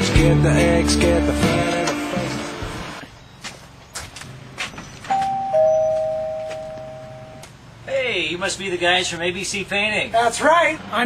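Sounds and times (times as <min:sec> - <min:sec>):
two-tone doorbell chime: 0:05.1 - 0:07.4.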